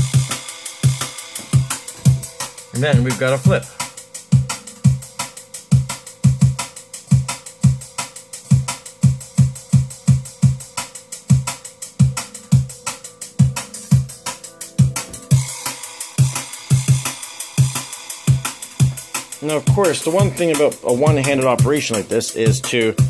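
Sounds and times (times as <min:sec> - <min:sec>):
drum and bass beat: 0:00.0 - 0:23.0.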